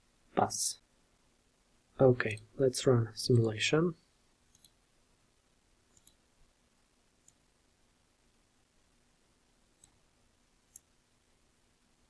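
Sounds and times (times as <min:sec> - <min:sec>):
faint computer mouse clicks: 0:04.5 - 0:04.8, 0:05.9 - 0:06.2, 0:07.2 - 0:07.4, 0:09.8 - 0:10.0.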